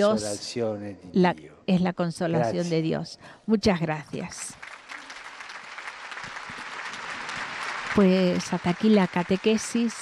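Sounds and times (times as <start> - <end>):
crowd applauding: 4.5 - 10.0.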